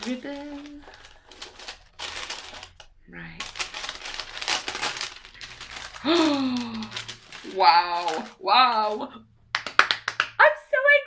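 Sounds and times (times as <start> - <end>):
paper packaging rustling: 0.0 - 9.2.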